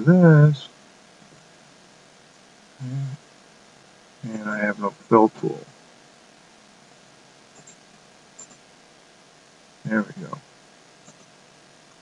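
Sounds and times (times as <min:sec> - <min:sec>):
low background hiss: 0:00.0 - 0:12.0
computer mouse clicks: 0:07.5 - 0:07.8, 0:08.4 - 0:08.6, 0:11.0 - 0:11.3.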